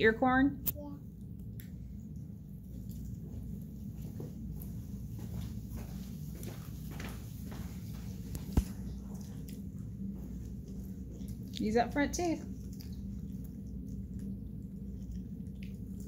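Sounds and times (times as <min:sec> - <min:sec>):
low room hum: 0:00.0 - 0:16.0
children chewing corn: 0:01.3 - 0:16.0.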